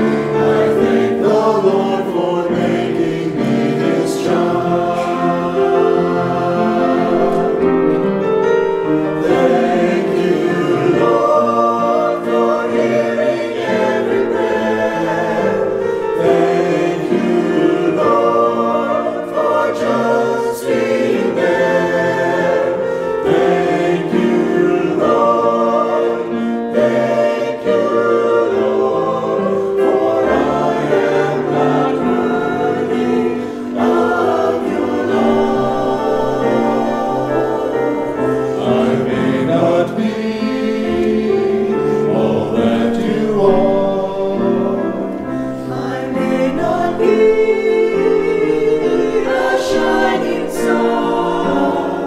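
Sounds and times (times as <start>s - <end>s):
church choir singing: 0.0s - 52.0s.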